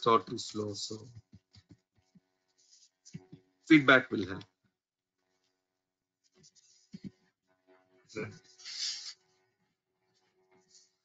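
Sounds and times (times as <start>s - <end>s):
breathy hiss: 8.6s - 9.2s.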